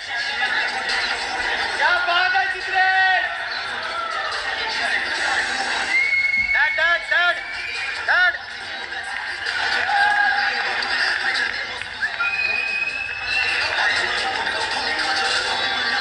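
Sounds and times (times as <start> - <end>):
audience cheering and yelling: 5.7 - 8.3, 9.3 - 15.0.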